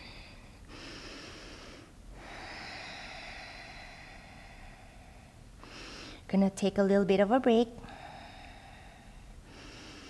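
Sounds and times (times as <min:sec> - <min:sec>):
woman breathing slowly: 0:00.0 - 0:06.3, 0:07.8 - 0:10.0.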